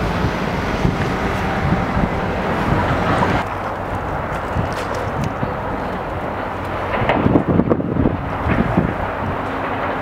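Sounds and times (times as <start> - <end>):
steady low rumble: 0.0 - 10.0
wind buffeting microphone: 0.0 - 10.0.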